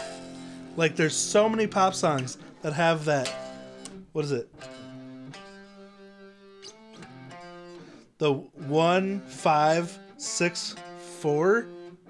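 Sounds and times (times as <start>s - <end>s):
guitar chords strummed softly: 0.0s - 12.0s.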